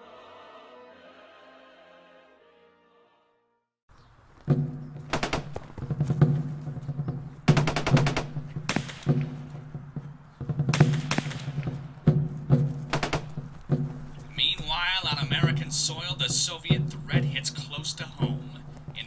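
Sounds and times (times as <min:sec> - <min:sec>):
automatic gunfire: 0:05.1 - 0:05.9, 0:07.5 - 0:09.4, 0:10.7 - 0:11.8, 0:12.9 - 0:13.6.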